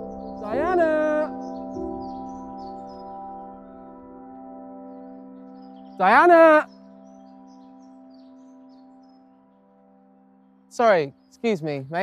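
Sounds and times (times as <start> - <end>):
soft sustained music chord: 0.0 - 12.0.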